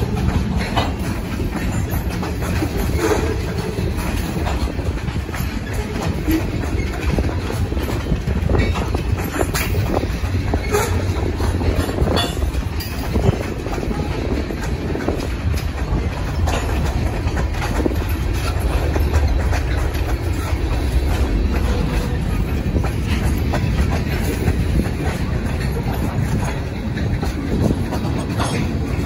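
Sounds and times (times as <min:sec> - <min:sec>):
rumble of steel wheels on rails: 0:00.0 - 0:29.0
sharp rail clacks: 0:00.0 - 0:29.0.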